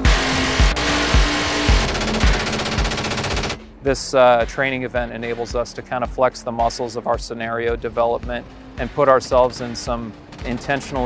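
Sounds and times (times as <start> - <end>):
minigun firing rapid buzz: 0.0 - 3.6.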